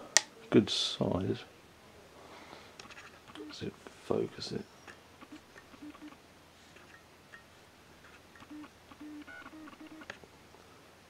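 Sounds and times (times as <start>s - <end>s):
short electronic beeps: 5.3s - 6.2s.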